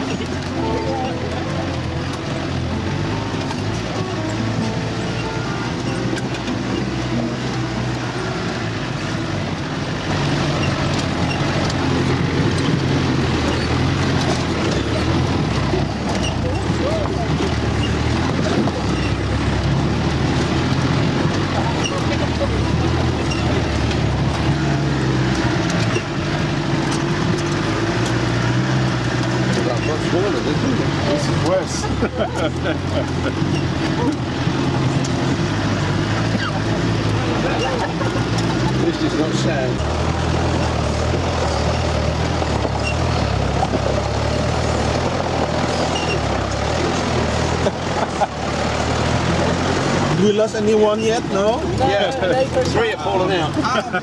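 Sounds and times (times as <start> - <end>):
engine running under load: 0.0 - 54.0
vehicle body rattling over bumps: 0.0 - 54.0.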